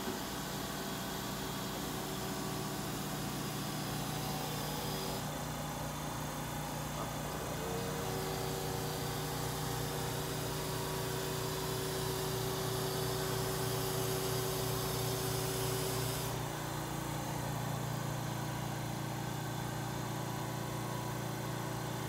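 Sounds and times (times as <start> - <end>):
vacuum lifter whine and hiss: 0.0 - 22.0.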